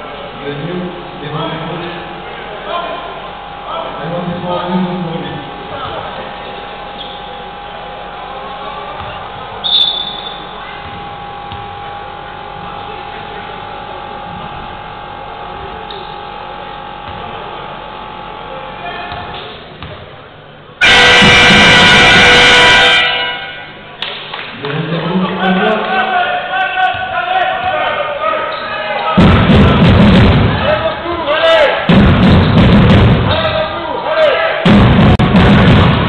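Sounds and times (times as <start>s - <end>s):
crowd ambience in a hall: 0.0s - 36.0s
high whistle: 9.6s - 10.6s
loud horn blast: 20.8s - 23.7s.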